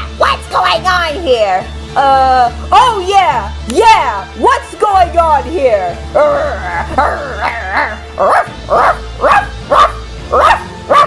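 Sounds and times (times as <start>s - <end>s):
background music: 0.0s - 11.0s
dog barking: 7.0s - 11.0s.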